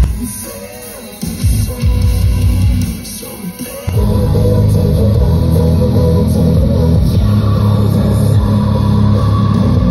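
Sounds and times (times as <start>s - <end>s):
bass-heavy music through car speaker: 0.0s - 9.9s.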